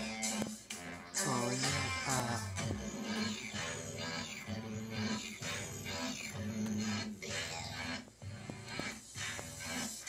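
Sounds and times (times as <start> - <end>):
electronic song with synthetic vocals: 0.0 - 10.0.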